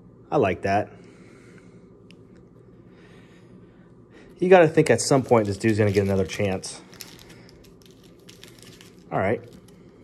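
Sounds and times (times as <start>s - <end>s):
trading cards ticking and rustling: 5.1s - 9.8s.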